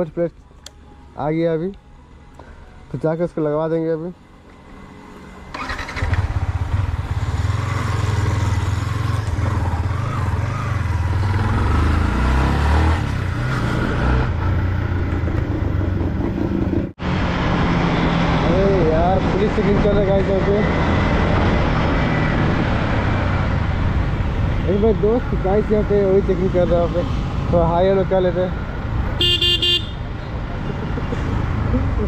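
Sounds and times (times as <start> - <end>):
motorcycle engine accelerating: 5.5 - 23.9.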